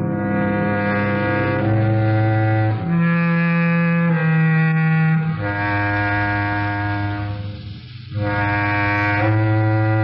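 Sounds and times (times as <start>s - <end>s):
long low held note: 0.0s - 10.0s.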